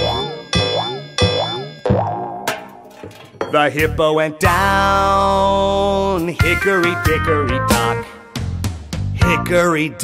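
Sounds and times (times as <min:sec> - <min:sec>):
cartoon clock bell strikes: 0:00.0 - 0:02.8.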